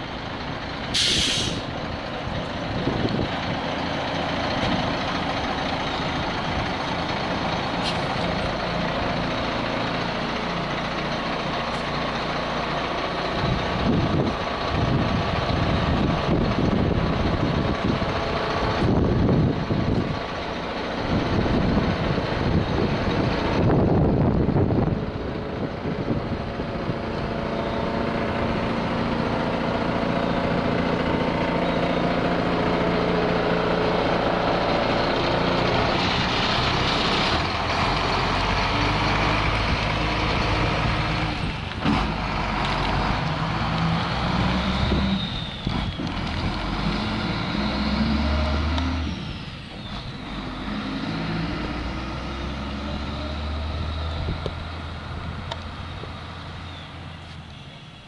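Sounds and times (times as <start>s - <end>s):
truck engine shifting gears: 0.0s - 58.0s.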